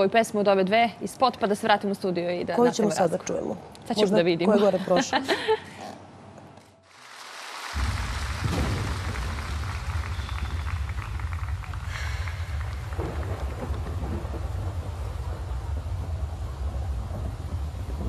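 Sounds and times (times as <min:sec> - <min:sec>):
rain hissing: 0:06.8 - 0:18.0
deep thunder rumble: 0:07.8 - 0:18.0.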